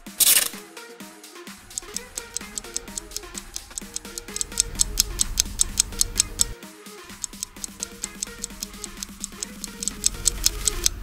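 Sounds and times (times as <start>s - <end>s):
fast clock-like ticking: 1.6s - 11.0s
looping countdown tune: 1.6s - 11.0s.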